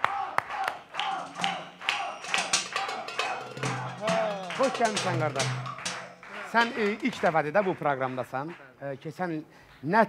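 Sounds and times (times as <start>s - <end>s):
voices: 0.0s - 9.4s
hand claps: 0.0s - 10.0s.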